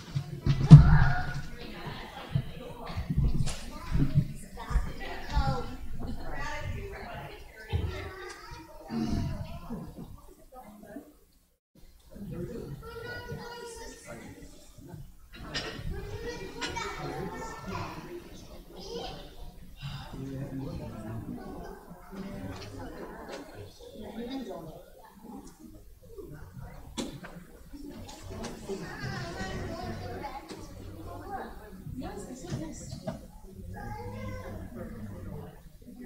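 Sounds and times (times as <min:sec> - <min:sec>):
children's voices: 0:00.0 - 0:10.3, 0:12.2 - 0:36.0
people talking indistinctly: 0:00.0 - 0:11.2, 0:12.0 - 0:36.0
people chattering: 0:00.0 - 0:36.0.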